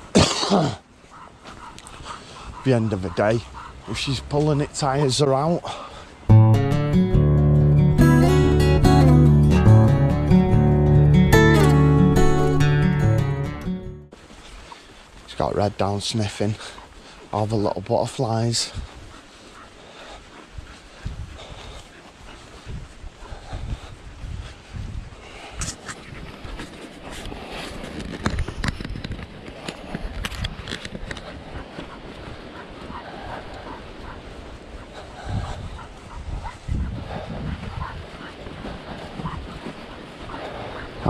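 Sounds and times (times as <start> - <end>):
puppy panting: 1.0 - 6.2, 18.5 - 24.0, 30.6 - 41.0
footsteps swishing through long grass: 14.2 - 15.3, 18.2 - 41.0
small clicks and low thumps: 25.6 - 34.2.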